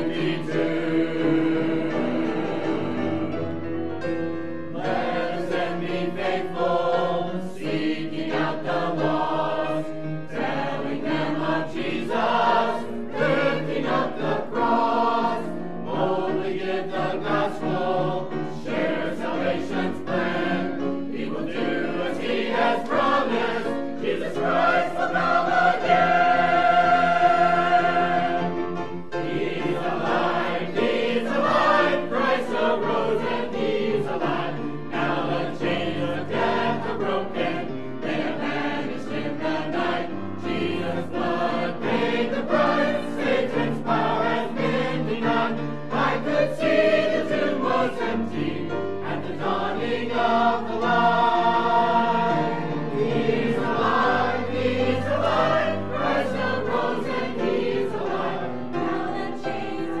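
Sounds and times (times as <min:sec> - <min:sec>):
mixed choir singing in harmony: 0:00.0 - 1:00.0.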